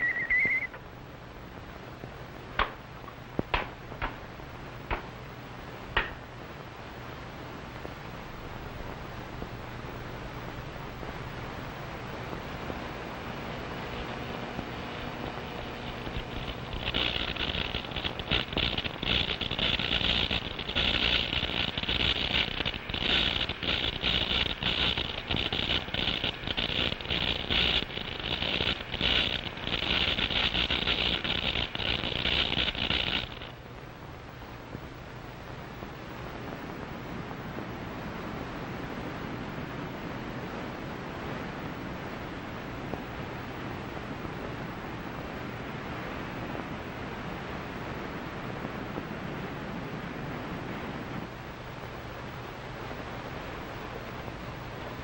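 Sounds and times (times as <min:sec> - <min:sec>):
mine detector crackling buzz: 0:00.0 - 0:00.8, 0:12.6 - 0:33.6
faint low hum: 0:00.0 - 0:55.0
surf-like hiss: 0:00.0 - 0:55.0.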